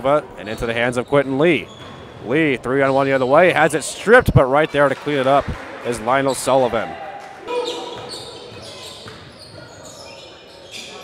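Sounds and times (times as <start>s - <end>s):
basketball bouncing on wooden floor: 7.9s - 9.7s.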